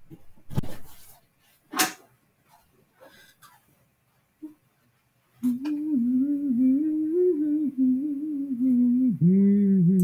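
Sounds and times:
woman humming: 0:05.4 - 0:10.0.

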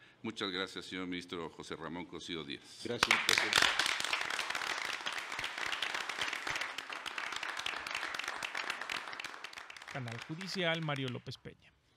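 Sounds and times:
crowd applauding: 0:03.0 - 0:11.3.

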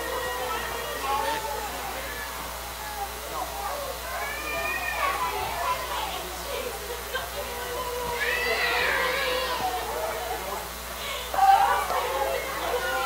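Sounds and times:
voices praying aloud: 0:00.0 - 0:13.0.

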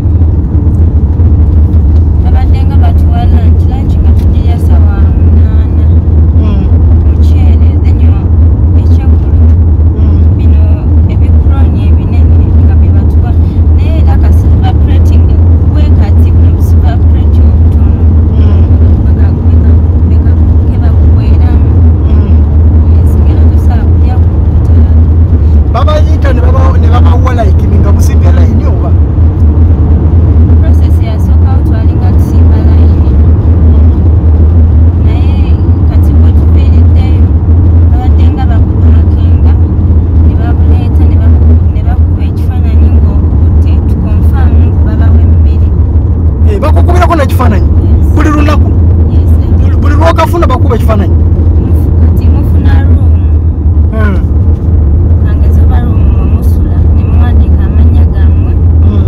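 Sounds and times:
car road and engine noise: 0:00.0 - 0:59.0.

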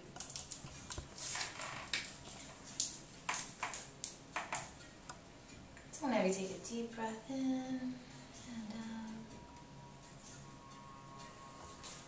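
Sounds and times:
plastic packets clicking and crinkling: 0:00.1 - 0:04.8.

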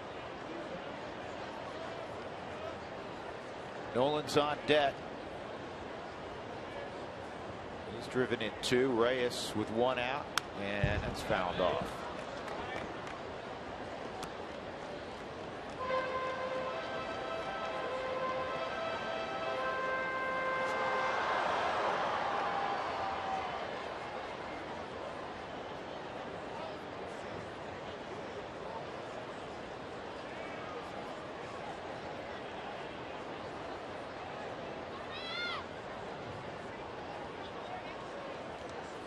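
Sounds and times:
stadium crowd noise: 0:00.0 - 0:39.0
music over stadium loudspeakers: 0:15.8 - 0:21.8.

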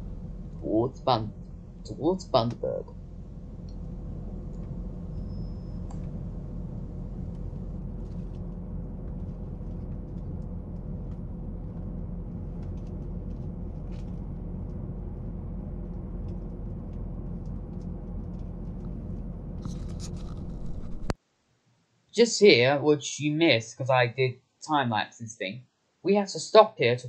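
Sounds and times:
low rumble of running train: 0:00.0 - 0:21.2.

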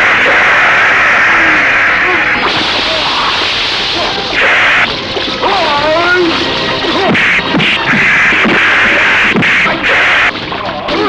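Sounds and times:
heavy rain: 0:00.0 - 0:11.0.

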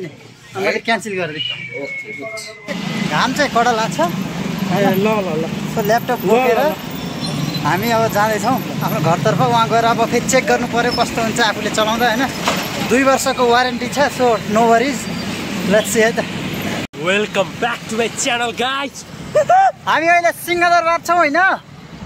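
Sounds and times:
men talking: 0:00.0 - 0:21.7
street traffic: 0:00.0 - 0:22.0.

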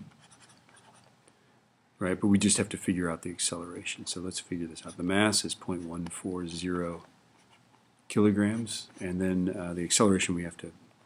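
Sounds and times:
stylus scratching on a tablet: 0:00.0 - 0:01.1, 0:04.6 - 0:09.2.

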